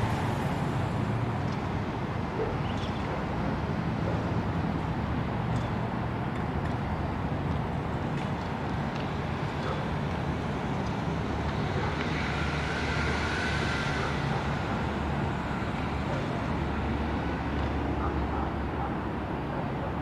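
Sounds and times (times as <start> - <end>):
traffic rumble: 0.0 - 20.0.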